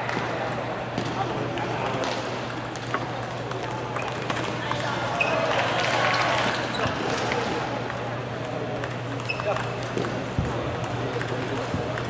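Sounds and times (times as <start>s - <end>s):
chatter in a large hall: 0.0s - 12.0s.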